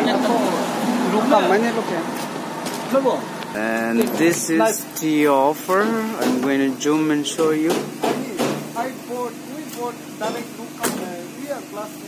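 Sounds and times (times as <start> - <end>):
people talking: 2.9 - 12.0.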